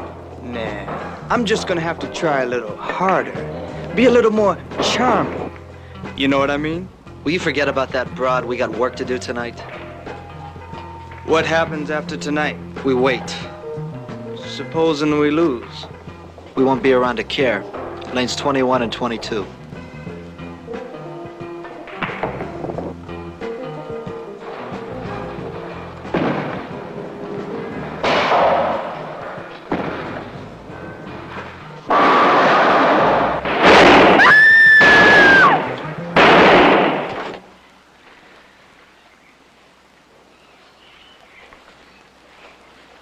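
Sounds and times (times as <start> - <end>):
film soundtrack music: 0.0 - 34.2
very loud blasts: 26.1 - 37.5.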